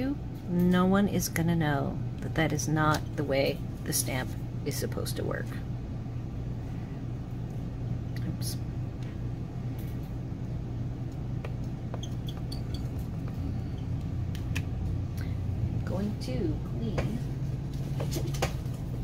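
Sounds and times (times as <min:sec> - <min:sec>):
low hum: 0:00.0 - 0:19.0.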